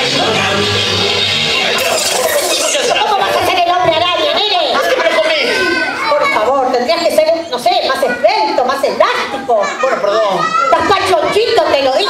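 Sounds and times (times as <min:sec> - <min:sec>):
high-pitched voices calling out: 0:00.0 - 0:08.6.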